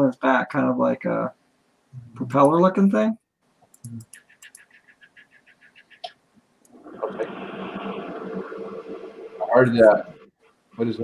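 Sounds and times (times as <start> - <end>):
room heater rushing hum: 6.7 - 11.0.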